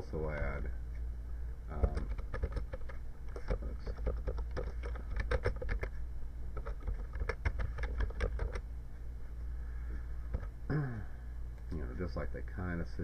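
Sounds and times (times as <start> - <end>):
low steady hum: 0.0 - 13.0
computer keyboard typing: 1.7 - 6.0, 6.6 - 8.6.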